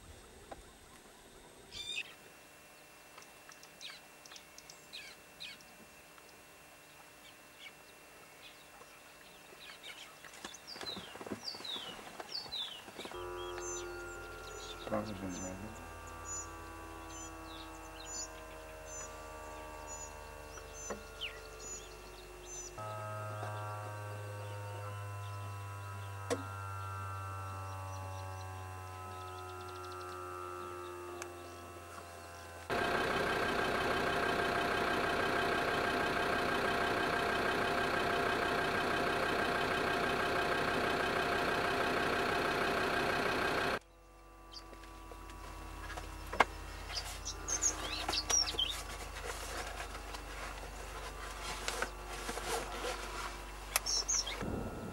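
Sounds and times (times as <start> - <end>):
vehicle engine running: 8.5 - 54.9
loud steady engine sound: 10.8 - 54.9.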